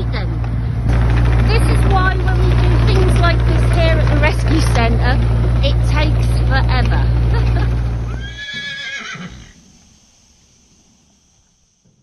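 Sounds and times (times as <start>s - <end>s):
digger engine running: 0.0s - 8.8s
horse whinny: 8.1s - 9.6s.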